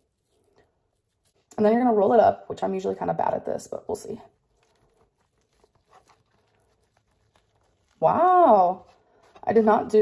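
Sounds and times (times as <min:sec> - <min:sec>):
soft handling of flatbread wrap: 0:00.0 - 0:01.5, 0:04.2 - 0:09.8.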